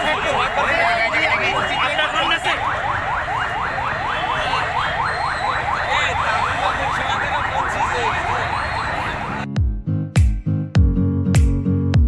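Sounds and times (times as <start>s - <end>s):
emergency vehicle siren yelping: 0.0s - 9.5s.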